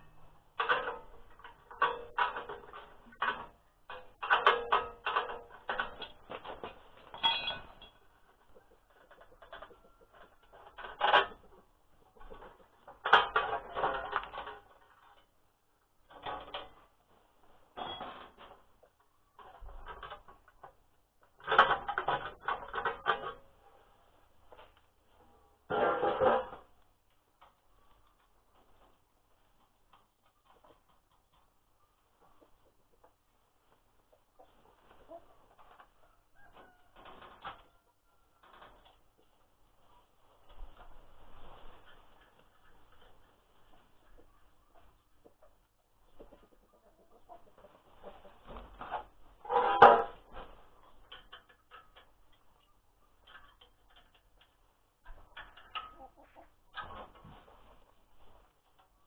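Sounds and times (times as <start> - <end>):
metal parts and tools clinking: 0.6 - 8.2.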